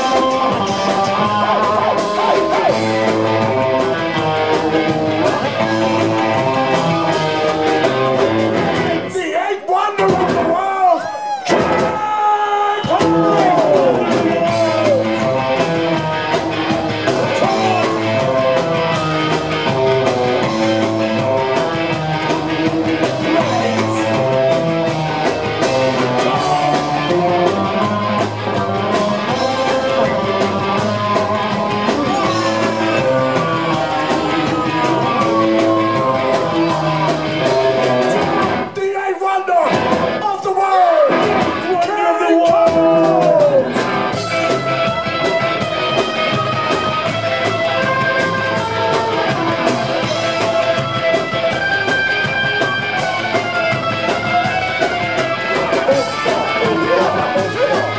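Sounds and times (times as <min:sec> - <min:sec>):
live ska band playing: 0:00.0 - 0:57.9.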